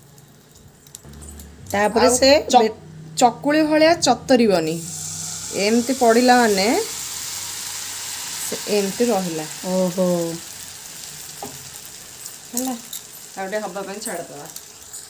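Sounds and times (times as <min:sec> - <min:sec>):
person speaking: 0:01.1 - 0:04.9
batter sizzling in frying pan: 0:04.8 - 0:15.0.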